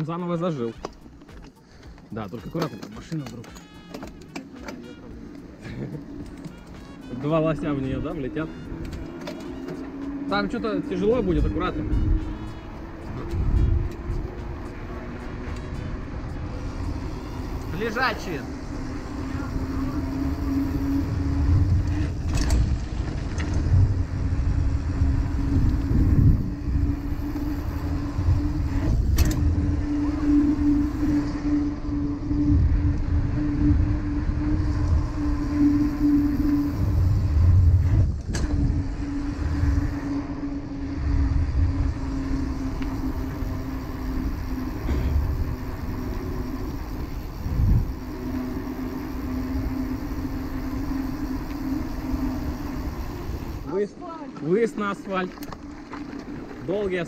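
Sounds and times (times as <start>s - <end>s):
bike tyre rumble: 4.2s - 57.0s
steady hum: 4.8s - 54.2s
wind buffeting microphone: 9.8s - 53.7s.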